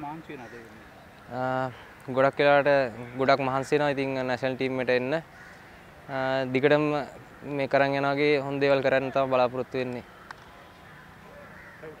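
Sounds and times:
distant bird calls: 0.0 - 12.0.

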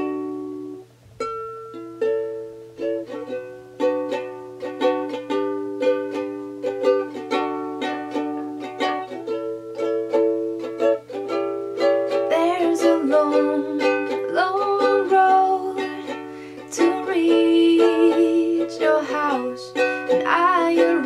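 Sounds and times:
ukulele plucked chords: 0.0 - 21.0.

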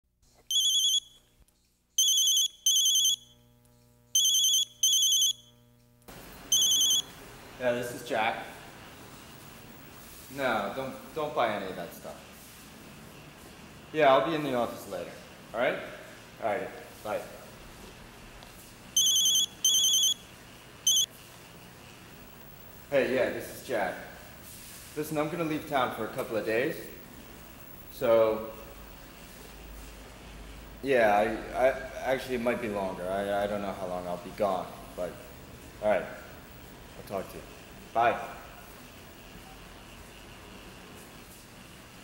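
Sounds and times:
mobile phone warbling ring: 0.5 - 1.2, 2.0 - 3.3, 4.2 - 5.5, 6.5 - 7.1, 19.0 - 20.2, 20.9 - 21.1.

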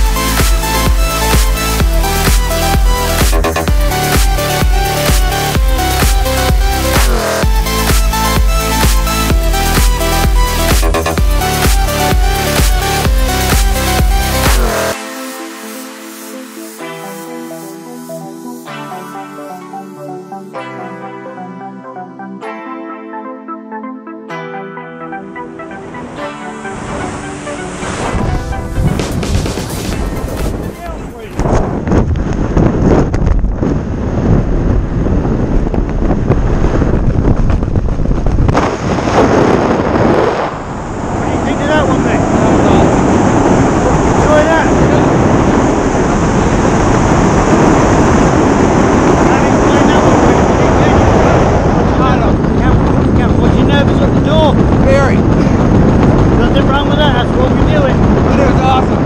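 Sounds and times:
loud wind rush on microphone: 0.0 - 15.1, 25.9 - 59.0
background music: 0.0 - 31.4.

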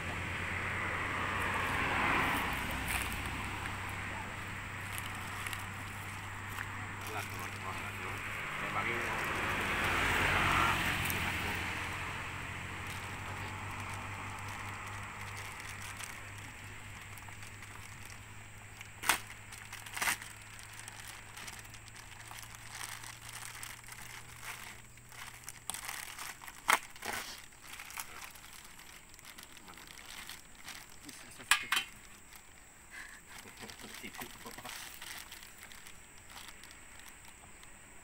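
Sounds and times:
plastic rustling and crinkling: 1.3 - 38.0.

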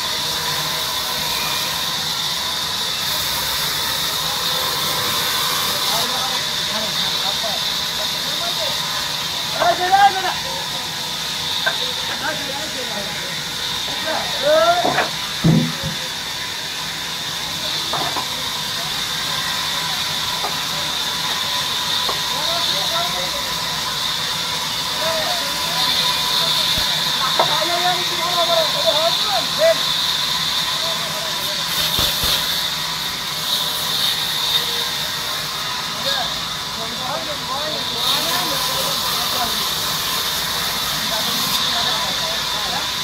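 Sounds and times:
band saw whining: 0.0 - 43.0
sawmill machinery hiss: 0.0 - 43.0
workers calling: 0.0 - 43.0.

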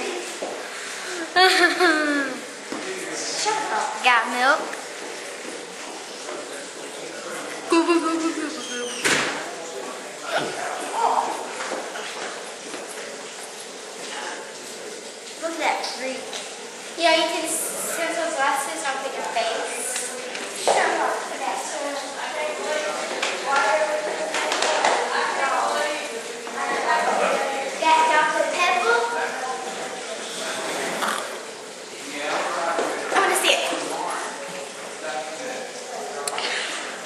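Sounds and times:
people talking and laughing: 0.0 - 3.9, 6.4 - 12.2, 17.0 - 37.0.

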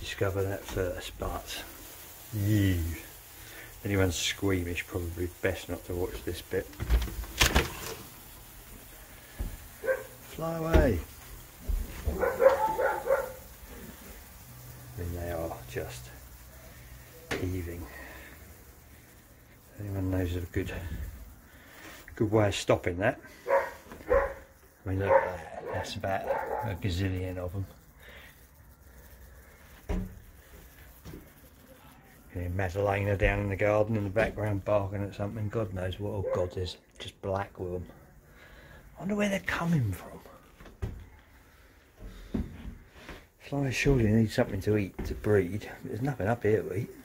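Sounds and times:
low steady background noise: 0.0 - 47.0
dog barking: 9.8 - 10.2, 12.1 - 13.5, 23.4 - 26.8, 36.2 - 36.5.

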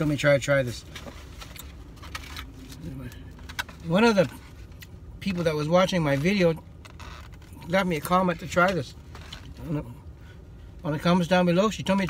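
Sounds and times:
low rumble inside car: 0.0 - 12.0.

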